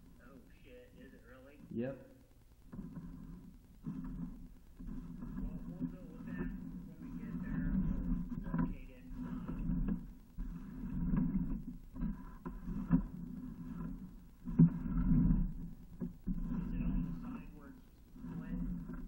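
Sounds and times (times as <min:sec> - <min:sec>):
muffled talking: 0:05.2 - 0:09.8, 0:16.5 - 0:18.9.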